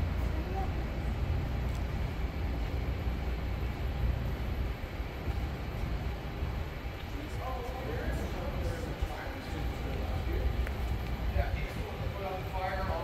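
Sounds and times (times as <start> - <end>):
low rumbling warehouse noise: 0.0 - 13.0.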